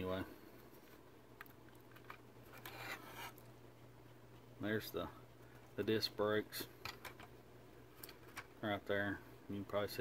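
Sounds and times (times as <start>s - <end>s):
steady low hum: 0.0s - 10.0s
soft rub: 2.5s - 3.5s.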